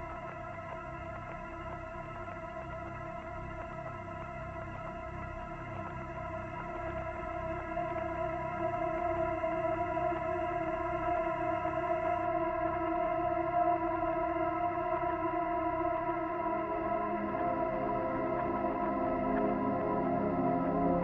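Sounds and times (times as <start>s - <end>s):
ambient music with held chord: 0.0s - 21.0s.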